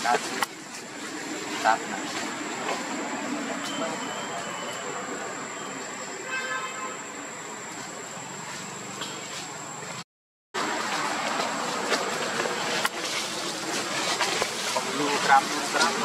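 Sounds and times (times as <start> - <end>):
rustling of dry leaves: 0.0 - 6.2, 10.6 - 16.0
outdoor background hiss: 0.0 - 10.0
thin high tone: 3.6 - 6.3.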